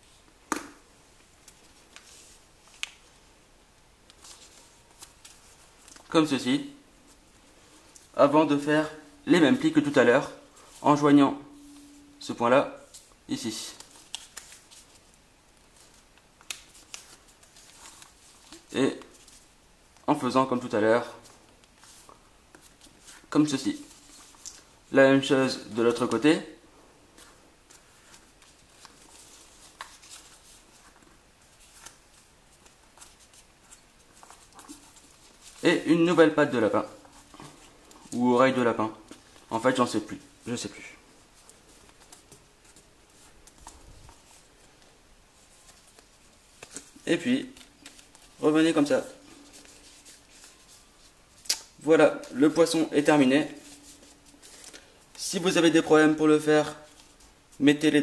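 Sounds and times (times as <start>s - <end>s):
paper rustling: 4.1s - 6.1s, 12.8s - 19.5s, 27.1s - 35.9s, 41.2s - 57.6s.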